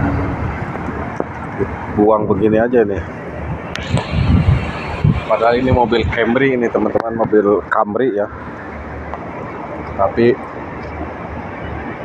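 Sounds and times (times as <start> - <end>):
street background noise: 0.0 - 12.0
wind buffeting microphone: 0.0 - 12.0.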